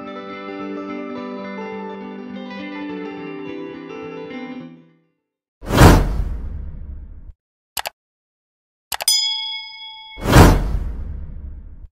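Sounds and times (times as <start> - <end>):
loud whoosh: 5.7 - 7.2, 10.2 - 11.9
bell chime: 9.1 - 10.4.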